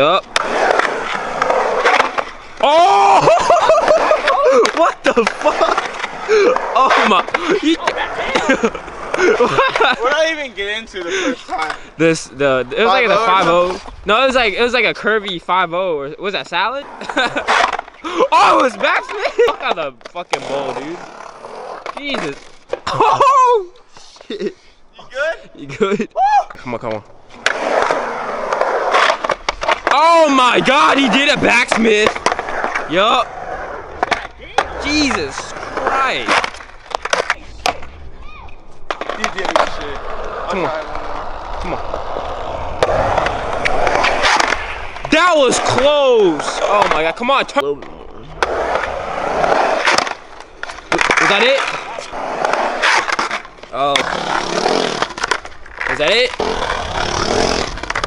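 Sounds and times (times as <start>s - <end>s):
skateboard trucks grinding coping: 0.0s - 15.5s, 16.2s - 23.2s, 27.3s - 58.0s
skateboard wheels rolling on concrete: 0.0s - 24.7s, 25.3s - 58.0s
skateboard clacks: 34.0s - 38.0s, 38.8s - 41.7s, 42.4s - 58.0s.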